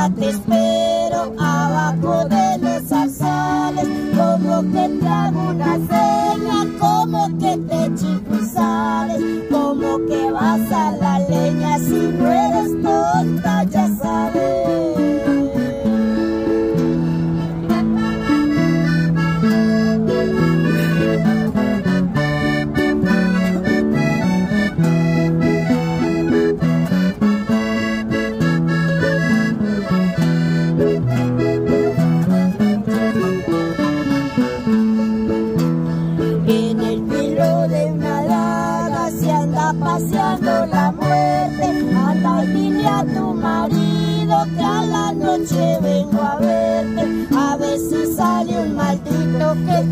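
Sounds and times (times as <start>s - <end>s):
button accordion melody: 0.0s - 49.9s
strummed acoustic guitars: 0.0s - 49.9s.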